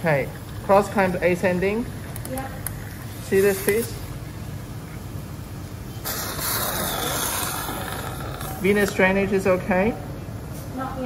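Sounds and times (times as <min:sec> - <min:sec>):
low equipment hum: 0:00.0 - 0:11.0
surgical suction hissing: 0:05.9 - 0:09.5.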